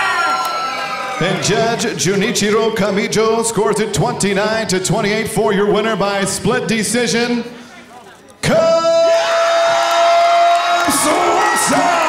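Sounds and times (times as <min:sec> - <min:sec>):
arena crowd cheering: 0:00.0 - 0:01.8, 0:08.5 - 0:12.0
ring announcer calling out: 0:08.4 - 0:12.0.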